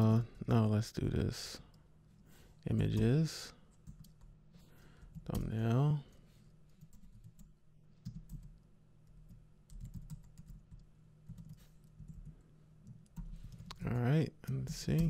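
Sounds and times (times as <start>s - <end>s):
computer keyboard typing: 3.8s - 4.3s, 6.7s - 13.8s.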